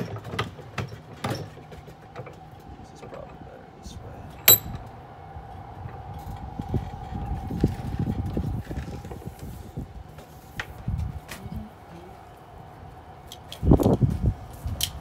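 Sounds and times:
metallic clank of vise: 4.4s - 4.8s.

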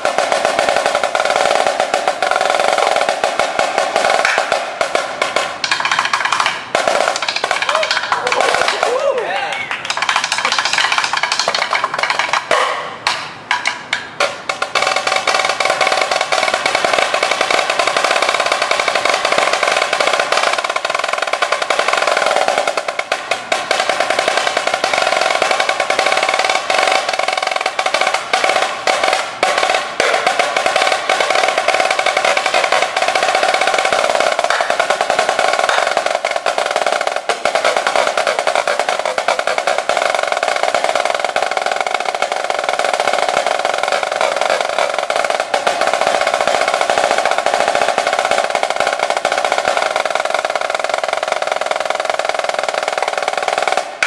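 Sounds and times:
snare drum rolls: 0.0s - 54.0s.

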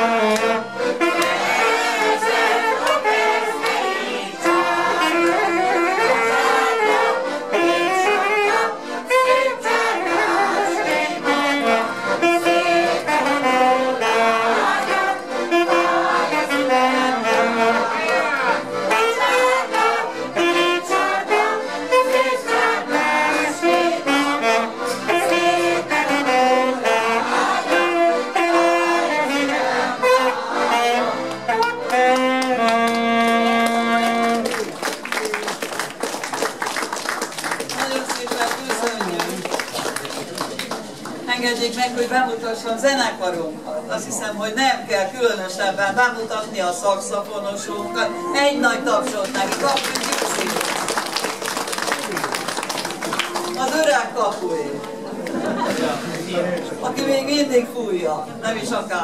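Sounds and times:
mixed choir singing folk song: 0.0s - 32.4s
saxophone: 0.0s - 35.5s, 47.6s - 51.0s, 51.6s - 53.7s
accordions: 0.0s - 42.8s, 43.5s - 57.5s.

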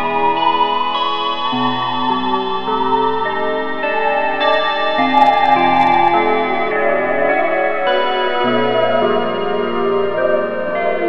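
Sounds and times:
ambient music held tones: 0.0s - 11.0s.

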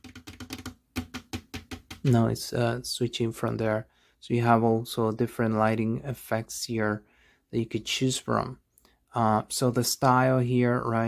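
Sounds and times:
fingers tapping hard plastic: 0.0s - 2.2s.

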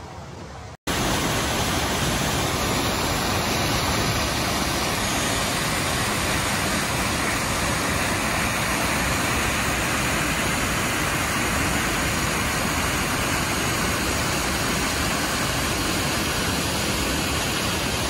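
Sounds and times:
creek rushing over rocks: 0.9s - 18.0s.

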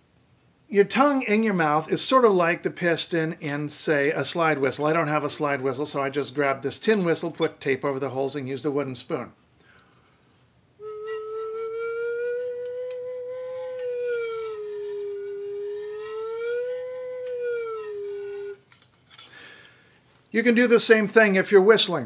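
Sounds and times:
sliding whistle note: 10.8s - 18.6s.

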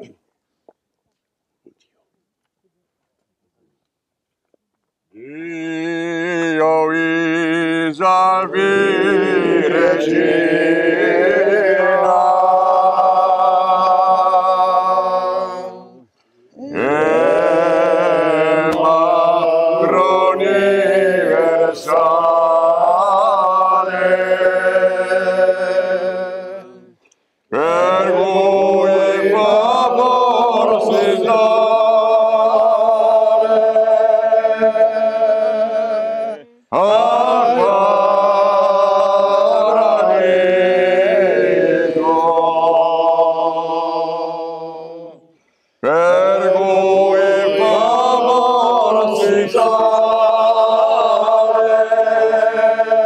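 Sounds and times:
men singing in close harmony: 5.2s - 16.0s, 16.6s - 26.9s, 27.5s - 53.0s.

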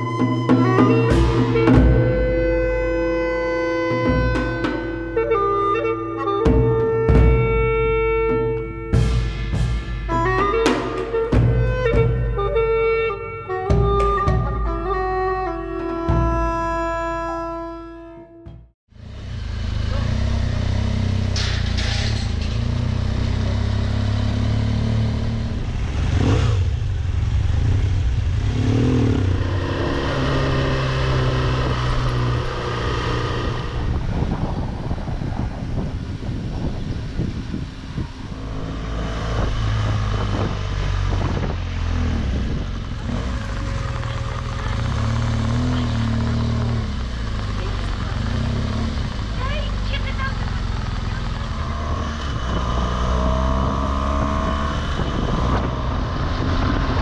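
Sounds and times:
motorcycle engine running: 18.5s - 57.0s.

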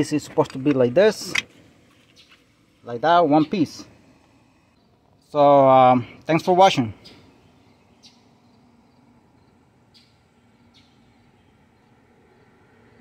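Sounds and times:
faint bird chirps: 6.8s - 12.4s.

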